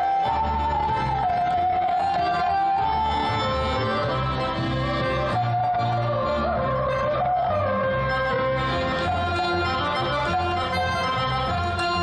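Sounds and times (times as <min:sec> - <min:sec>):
accordion melody: 0:00.0 - 0:12.0
double bass notes: 0:00.0 - 0:12.0.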